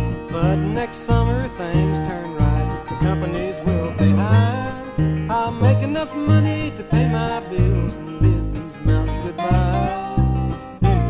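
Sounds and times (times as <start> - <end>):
plucked double bass: 0.0 - 11.0
sliding lead instrument: 0.0 - 11.0.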